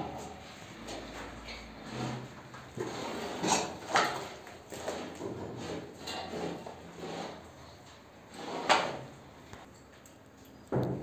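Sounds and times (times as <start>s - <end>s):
plastering tool scraping plaster: 1.1s - 9.2s.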